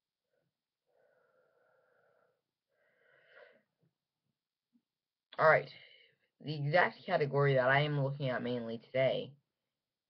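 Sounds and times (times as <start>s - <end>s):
faint breath: 0.4s - 3.8s.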